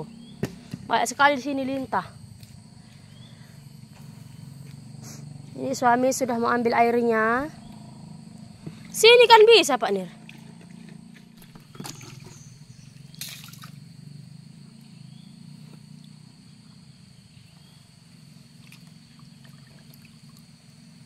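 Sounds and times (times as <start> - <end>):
low steady hum: 0.0 - 21.0
stream trickling: 7.1 - 14.2, 15.8 - 21.0.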